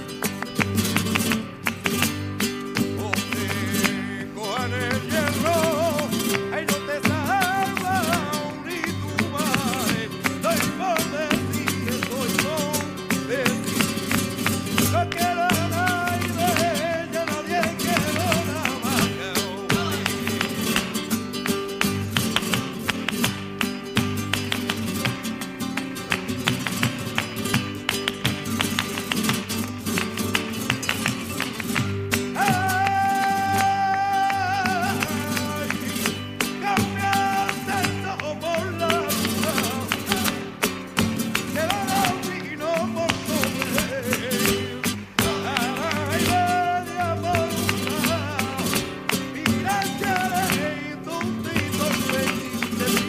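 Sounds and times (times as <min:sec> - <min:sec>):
acoustic guitar: 0:00.0 - 0:53.0
dancer's footwork: 0:00.0 - 0:53.0
handclaps: 0:00.0 - 0:53.0
man singing: 0:02.4 - 0:23.2, 0:30.2 - 0:53.0.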